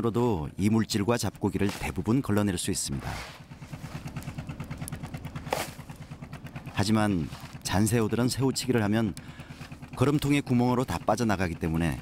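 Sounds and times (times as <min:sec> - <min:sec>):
boat engine idling: 0:00.4 - 0:12.0
shrimp sliding into plastic crate: 0:03.0 - 0:03.9.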